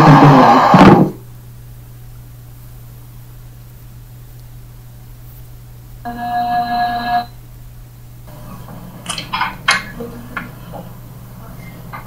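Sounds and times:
constant low hum: 1.2 - 12.0
steady electronic tone: 6.0 - 7.4.

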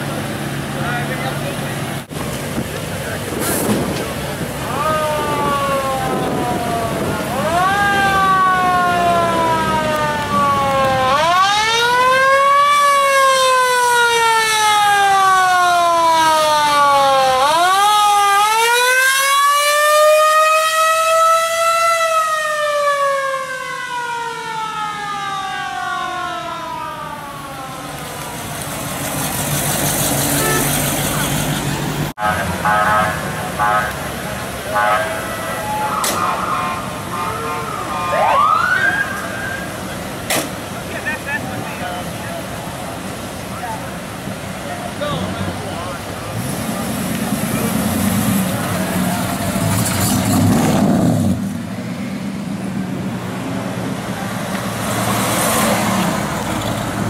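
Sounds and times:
siren wailing: 4.6 - 28.6, 34.7 - 39.8.

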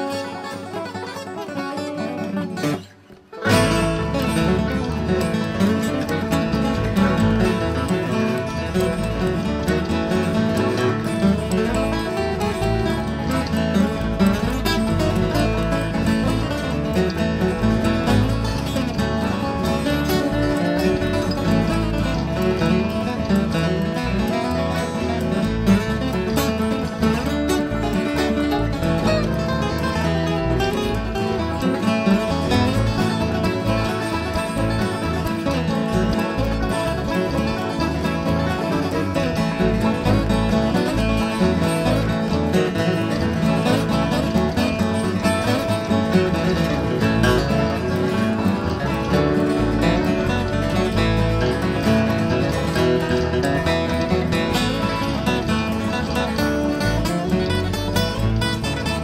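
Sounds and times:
bluegrass acoustic string music: 0.0 - 59.0.

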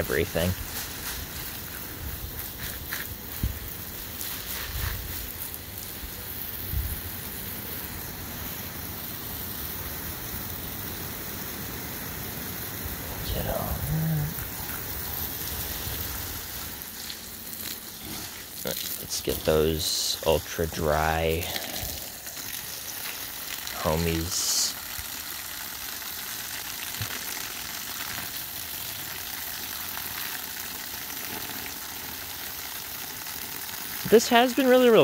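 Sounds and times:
hose spray hissing on leaves: 0.0 - 35.0.

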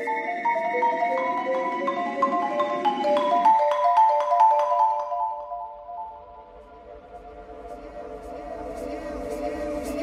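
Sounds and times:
marimba notes played with mallets: 0.0 - 6.4.

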